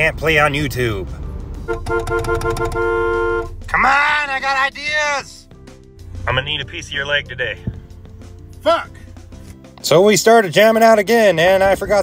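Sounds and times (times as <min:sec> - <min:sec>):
truck two-tone horn honking: 0:01.6 - 0:03.7.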